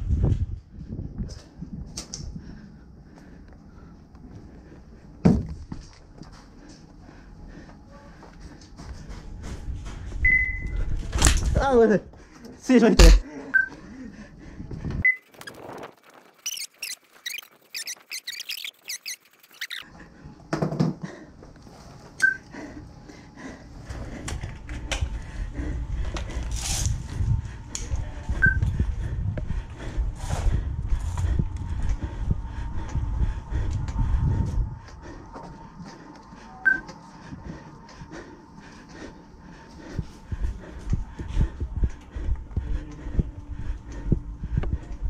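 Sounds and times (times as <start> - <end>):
high-pitched chirping squeaks: 15.0 - 19.9.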